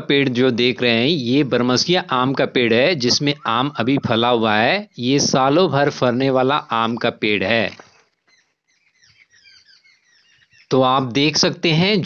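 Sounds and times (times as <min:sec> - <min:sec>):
man's voice: 0:00.0 - 0:07.9, 0:10.7 - 0:12.0
small birds chirping: 0:00.0 - 0:12.0.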